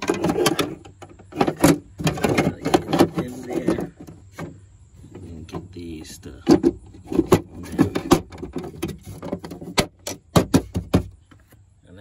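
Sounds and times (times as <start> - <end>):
hard plastic clicks and knocks: 6.4 - 11.4.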